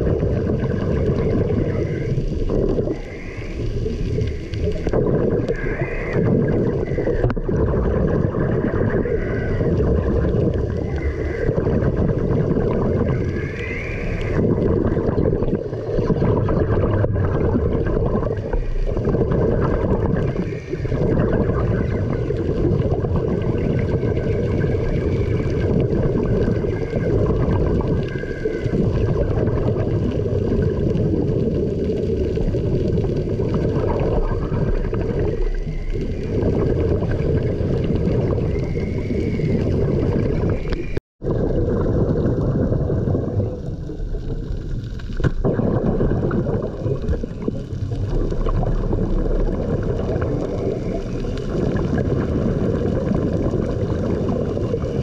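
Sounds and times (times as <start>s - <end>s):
air bubbles gurgling: 0.0s - 55.0s
underwater low rush: 0.0s - 55.0s.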